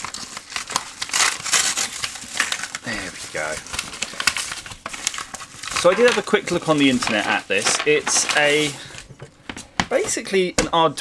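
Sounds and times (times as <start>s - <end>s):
paper mailer tearing: 0.0s - 8.9s.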